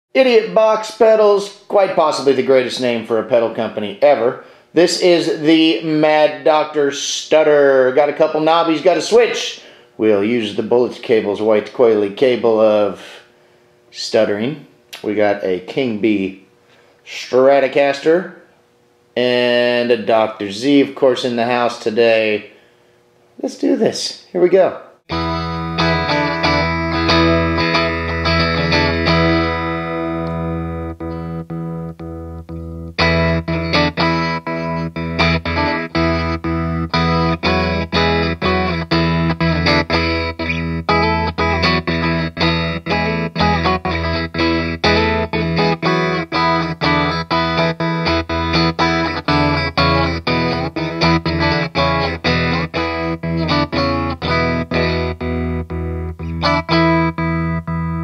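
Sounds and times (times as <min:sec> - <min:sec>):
electric guitar with stutter tremolo: 0:25.1 - 0:58.0.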